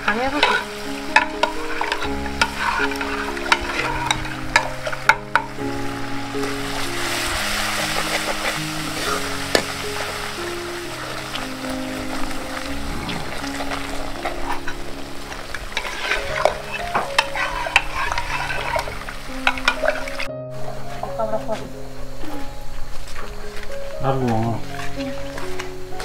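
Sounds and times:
metal ladle scraping cooking pots: 0.0 - 5.7, 6.4 - 10.4, 11.0 - 20.3
food sizzling in a wok: 0.0 - 21.3
soft background music: 0.0 - 26.0.

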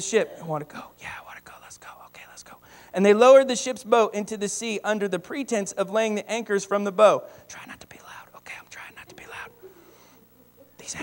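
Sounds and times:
man whispering: 0.0 - 2.8, 7.4 - 9.8, 10.6 - 11.0.

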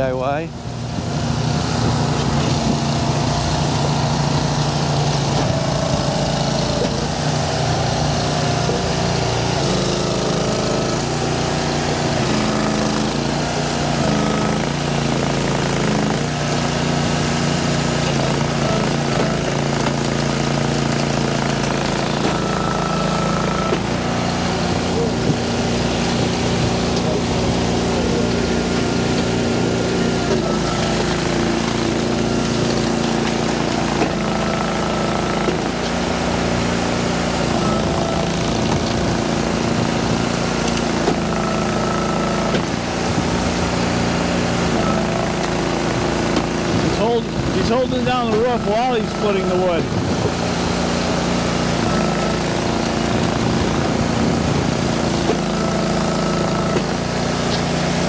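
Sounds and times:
log splitter engine running: 0.0 - 58.0.

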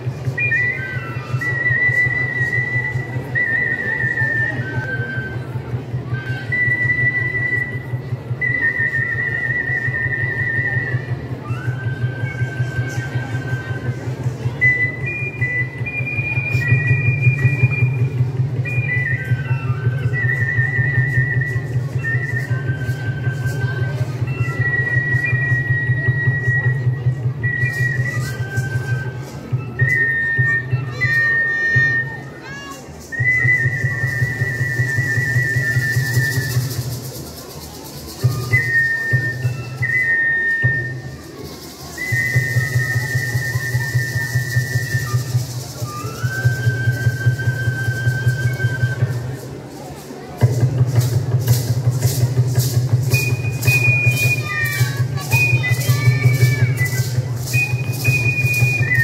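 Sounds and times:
high flute melody: 0.0 - 59.0.

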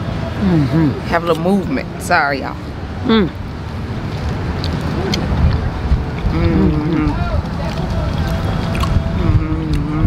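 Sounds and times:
long steady hum: 0.0 - 10.0
low outdoor rumble: 0.0 - 10.0.

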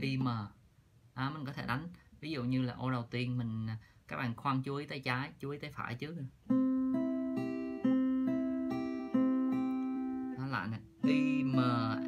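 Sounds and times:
fingerpicked acoustic guitar: 6.4 - 12.0.

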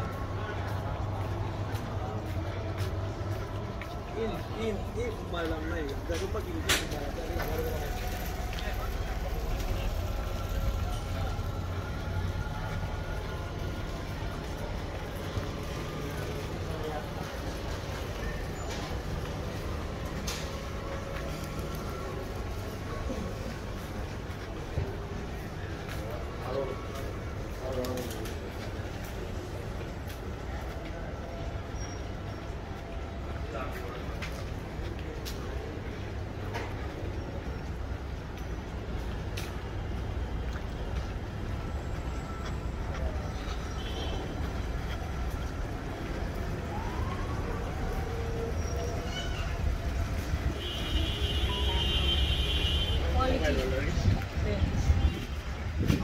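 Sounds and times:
indistinct voices of passers-by: 0.0 - 56.0
low city rumble: 0.0 - 56.0.

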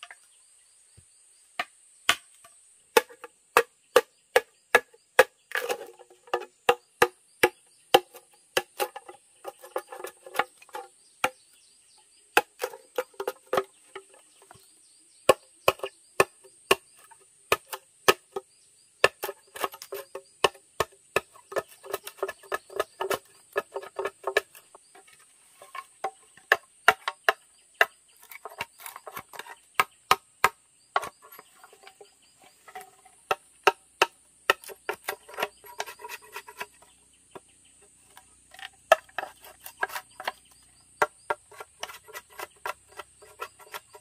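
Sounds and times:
machete chopping bamboo: 1.6 - 11.5, 12.4 - 14.2, 15.2 - 18.4, 19.0 - 32.0, 33.2 - 37.5, 38.1 - 44.0.

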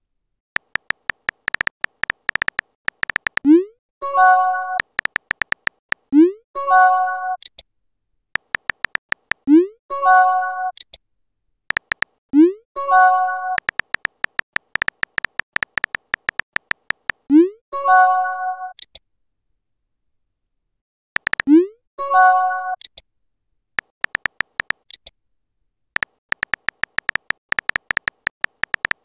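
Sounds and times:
phone keyboard typing ticks: 0.6 - 3.6, 4.7 - 6.1, 8.4 - 9.5, 11.7 - 12.2, 13.5 - 17.3, 21.2 - 21.6, 23.8 - 25.1, 26.0 - 29.0.

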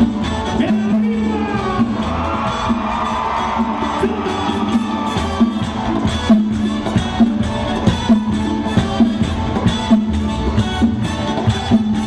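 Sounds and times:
latin band with horns and congas: 0.0 - 12.0
audience cheering and whooping: 1.6 - 8.7.

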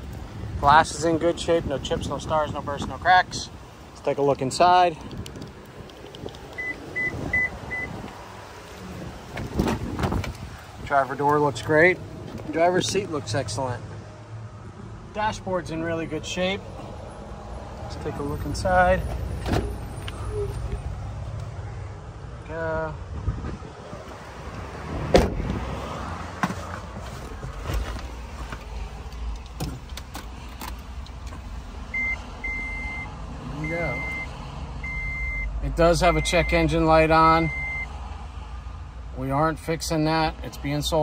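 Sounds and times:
wind buffeting microphone: 5.0 - 10.9, 23.0 - 25.7
car door clunks: 9.3 - 10.4, 25.0 - 25.6
brief thump: 25.1 - 25.6
short high car beeps: 32.0 - 36.6.

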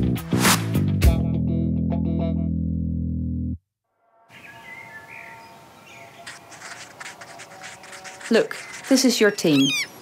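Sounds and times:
bird chirps: 4.3 - 10.0
steady outdoor hiss: 4.3 - 10.0.

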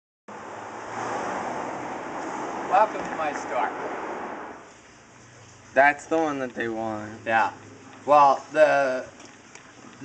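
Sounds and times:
rushing outdoor background hiss: 0.3 - 9.1.

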